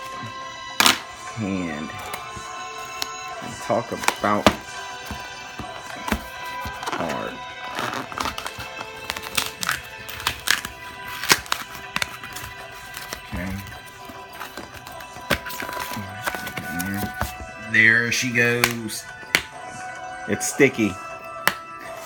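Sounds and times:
background music: 0:00.0 - 0:22.0
packing tape peeling off cardboard: 0:05.6 - 0:17.3.

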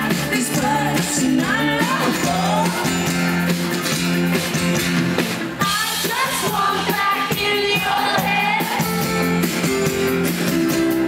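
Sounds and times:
steady drum beat: 0:00.0 - 0:11.0
strummed acoustic guitars: 0:00.0 - 0:11.0.

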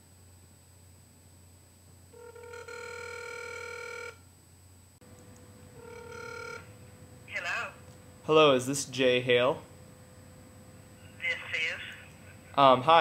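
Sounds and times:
telephone ringback tone: 0:02.1 - 0:04.2, 0:05.8 - 0:06.7.

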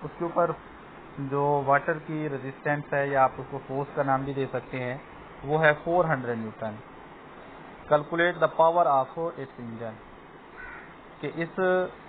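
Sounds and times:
man speaking: 0:00.0 - 0:00.6, 0:01.2 - 0:06.9, 0:07.9 - 0:10.0, 0:11.2 - 0:12.0
low background hiss: 0:00.0 - 0:12.0.

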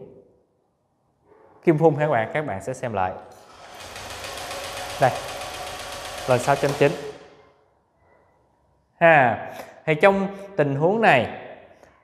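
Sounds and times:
scooter starter cranking engine: 0:03.4 - 0:07.4.

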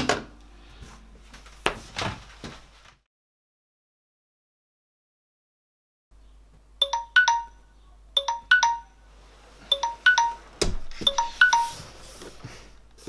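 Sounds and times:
phone ringtone chime: 0:06.8 - 0:09.0, 0:09.7 - 0:11.9.

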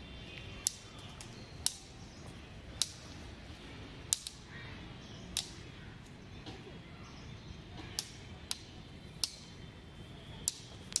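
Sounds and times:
faint steady background noise: 0:00.0 - 0:11.0
sharp clicks: 0:04.1 - 0:04.4, 0:07.9 - 0:09.5.

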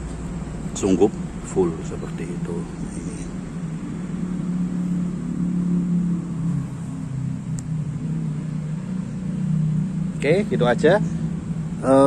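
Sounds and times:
low engine hum: 0:00.0 - 0:12.0.

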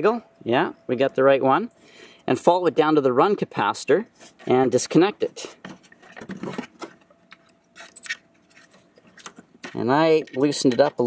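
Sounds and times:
wire terminal clicks and scrapes: 0:05.8 - 0:11.0.

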